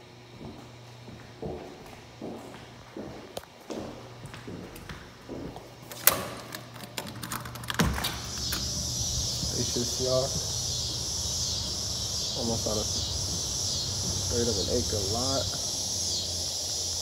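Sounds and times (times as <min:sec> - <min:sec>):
footsteps on hard floor: 0:00.4 - 0:05.9, 0:07.8 - 0:12.0, 0:12.9 - 0:14.5
door latch clicking: 0:05.9 - 0:08.7
insects chorus: 0:07.6 - 0:17.0.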